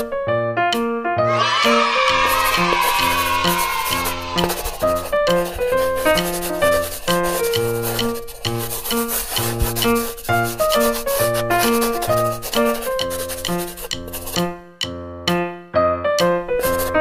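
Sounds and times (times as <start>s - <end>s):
light bouncy background music: 0.0s - 1.5s, 2.2s - 17.0s
scratchy rubbing noise: 1.7s - 14.5s, 16.6s - 17.0s.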